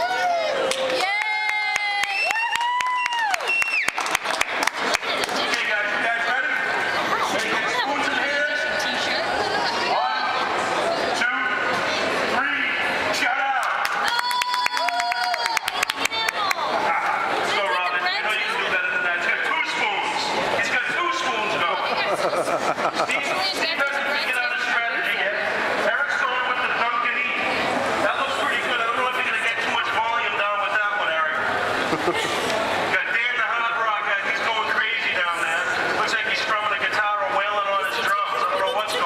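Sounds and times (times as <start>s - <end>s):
man speaking through megaphone: 5.4s - 9.1s, 12.3s - 13.9s, 16.9s - 21.9s, 23.1s - 31.5s, 32.9s - 39.0s.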